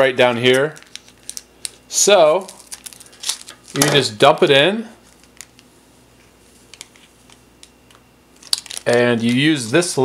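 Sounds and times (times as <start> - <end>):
plastic packet clicking and crinkling: 0.3 - 1.8, 2.4 - 4.0, 5.1 - 5.7, 6.7 - 9.5.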